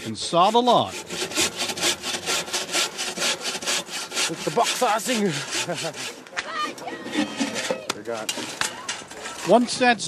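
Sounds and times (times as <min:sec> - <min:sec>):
bow saw cutting log: 0:00.0 - 0:06.3
person laughing: 0:05.1 - 0:06.2.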